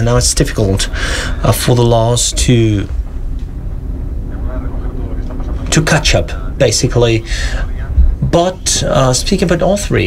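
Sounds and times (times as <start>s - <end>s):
low rumble of room noise: 0.0s - 10.0s
faint murmured voice: 4.2s - 6.6s.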